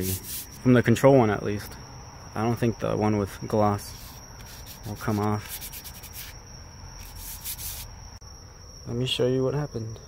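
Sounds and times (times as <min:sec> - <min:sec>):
hand rubbing a surface: 0:00.0 - 0:00.6, 0:03.8 - 0:06.4, 0:07.0 - 0:07.9
faint high-pitched tone: 0:00.0 - 0:10.0.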